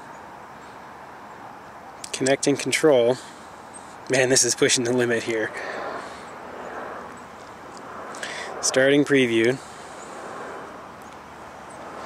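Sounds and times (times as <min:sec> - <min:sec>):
outdoor background hiss and rumble: 0:00.0 - 0:12.0.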